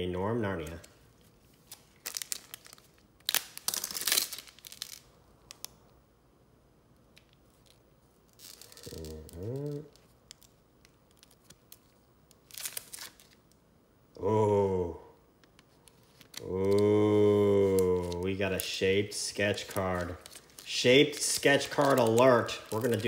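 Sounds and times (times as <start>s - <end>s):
wrapper ripping and crinkling: 0.6s - 5.7s, 7.2s - 13.6s, 15.7s - 23.0s
man humming: 8.8s - 10.0s, 14.2s - 15.2s, 16.4s - 18.4s.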